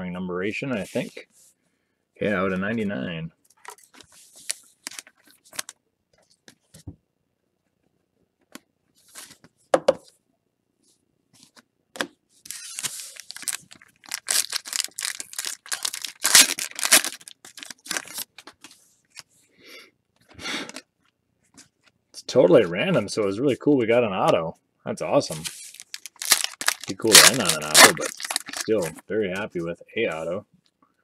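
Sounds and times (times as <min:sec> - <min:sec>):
wrapper crinkling and tearing: 0:03.7 - 0:05.8, 0:12.5 - 0:18.6, 0:25.3 - 0:29.0.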